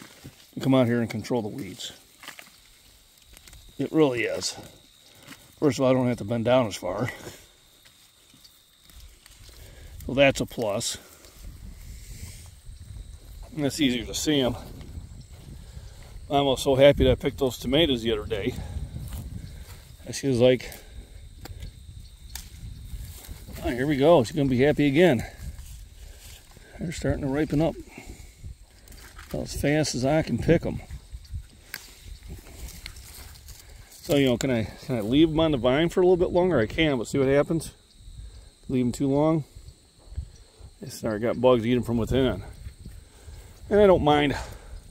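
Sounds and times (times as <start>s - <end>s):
rustling of weeds being pulled: 0.0s - 16.7s, 17.4s - 35.4s
soft clicks of tomatoes picked: 20.7s - 23.6s, 31.3s - 34.6s.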